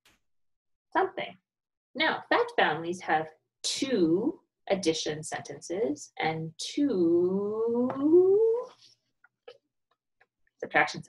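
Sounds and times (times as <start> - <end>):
woman holding a rising vowel: 6.9 - 8.7.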